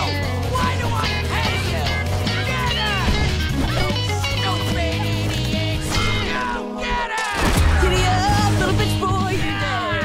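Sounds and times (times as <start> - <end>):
rock song with guitar and bass: 0.0 - 6.4.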